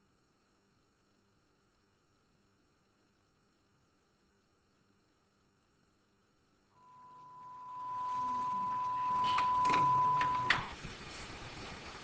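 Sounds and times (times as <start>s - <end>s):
tape hiss: 0.0s - 12.0s
steady test tone: 6.8s - 10.7s.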